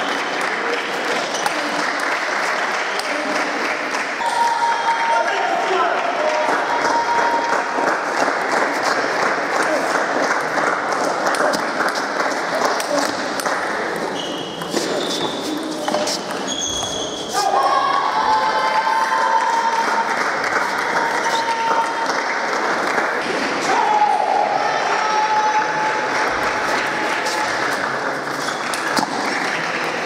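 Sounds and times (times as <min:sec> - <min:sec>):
babble of many voices: 0:00.0 - 0:30.0
high squeaks: 0:14.2 - 0:17.4.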